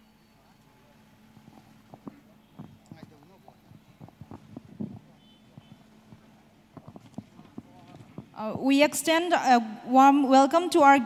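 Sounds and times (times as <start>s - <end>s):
faint distant voices: 0.0s - 8.8s
footsteps and furniture knocks: 1.9s - 8.4s.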